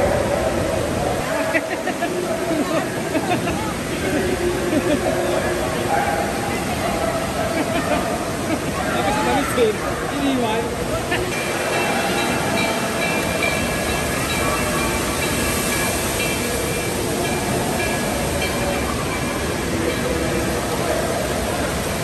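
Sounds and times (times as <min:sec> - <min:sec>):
water rushing: 0:00.0 - 0:22.0.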